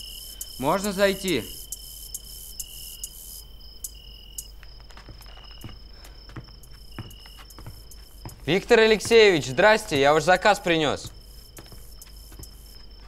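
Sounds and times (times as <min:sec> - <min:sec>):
crickets chirping: 0:00.0 - 0:13.0.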